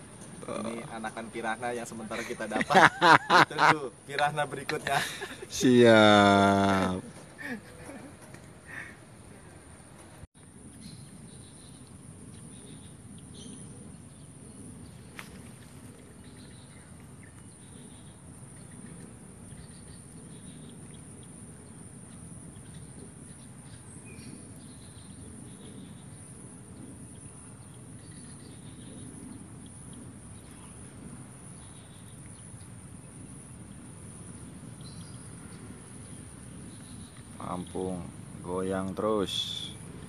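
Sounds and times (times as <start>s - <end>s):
insects chirping: 0.0s - 40.0s.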